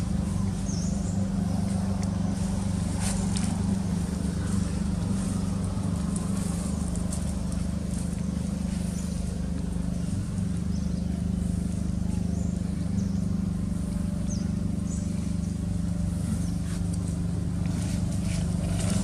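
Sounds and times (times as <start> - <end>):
engine humming: 0.0 - 19.0.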